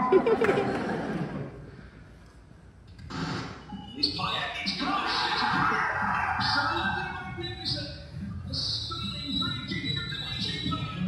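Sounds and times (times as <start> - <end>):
tv audio music with voice: 3.0 - 11.0.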